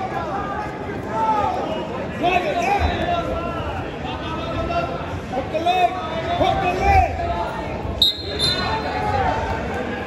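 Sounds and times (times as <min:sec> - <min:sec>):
crowd chatter: 0:00.0 - 0:10.0
referee's whistle blast: 0:08.0 - 0:08.8.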